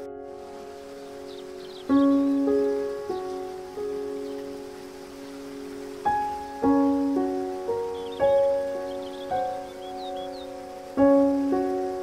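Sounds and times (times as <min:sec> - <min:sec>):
gentle solo piano: 0:00.0 - 0:12.0
rushing water hiss: 0:00.0 - 0:12.0.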